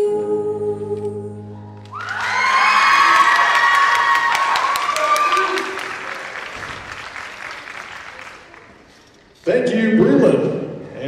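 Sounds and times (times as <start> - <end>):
audience cheering and whoops: 1.8 - 8.2
audience applause: 1.9 - 9.1.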